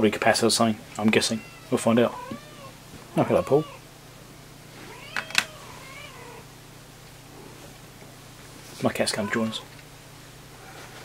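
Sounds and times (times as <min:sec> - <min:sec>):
cat meowing: 0:01.2 - 0:03.8, 0:04.8 - 0:06.5, 0:09.1 - 0:09.7.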